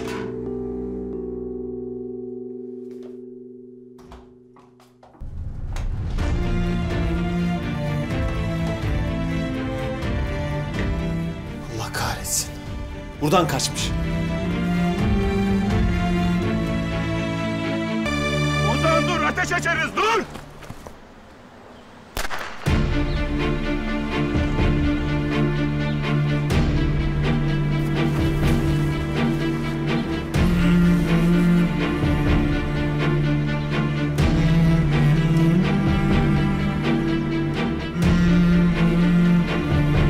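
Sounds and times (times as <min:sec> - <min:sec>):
pistol shot: 0:22.2 - 0:22.8
dramatic orchestral score: 0:22.6 - 0:40.0.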